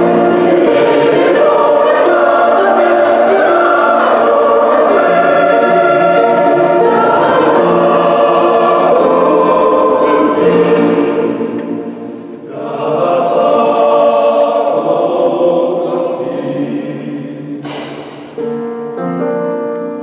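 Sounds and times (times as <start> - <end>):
mixed choir singing in harmony: 0.0 - 18.6.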